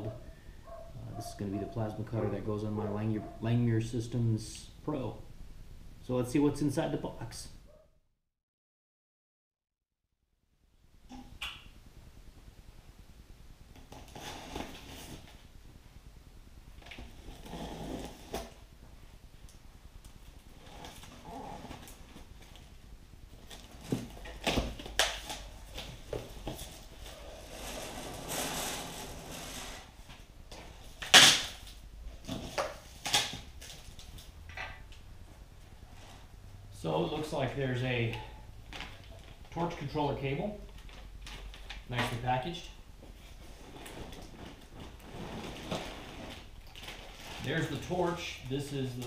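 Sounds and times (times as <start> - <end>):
cardboard rustling and scraping: 13.9 - 15.5, 16.8 - 18.6, 23.4 - 34.3, 43.0 - 48.2.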